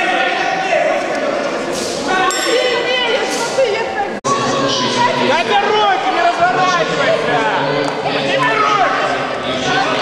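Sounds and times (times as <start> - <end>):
people calling out and talking: 0.0 - 10.0.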